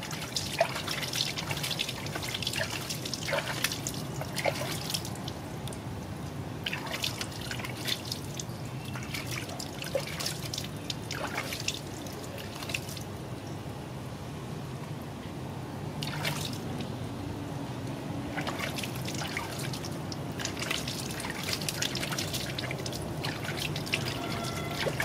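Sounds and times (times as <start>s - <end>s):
water dripping into a plastic basin: 0.0s - 13.1s, 16.0s - 16.9s, 18.3s - 25.0s.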